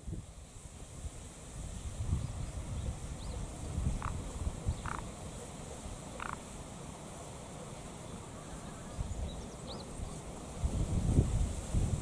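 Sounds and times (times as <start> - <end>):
wind buffeting microphone: 0.0 - 5.2, 8.9 - 12.0
small animal calls: 3.9 - 6.5.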